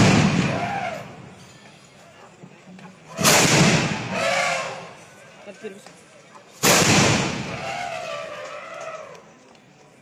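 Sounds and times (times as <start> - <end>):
cannon shot boom: 0.0 - 0.7, 3.2 - 4.2, 6.6 - 7.6.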